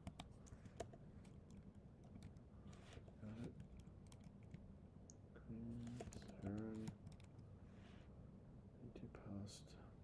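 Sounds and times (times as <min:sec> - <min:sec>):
computer keyboard keystrokes: 0:00.0 - 0:02.4, 0:03.5 - 0:04.6, 0:05.8 - 0:07.4.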